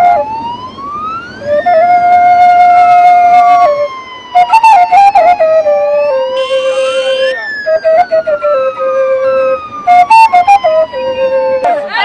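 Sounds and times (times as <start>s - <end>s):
electronic siren-like wail: 0.0s - 11.8s
stepped higher electronic notes: 1.5s - 11.7s.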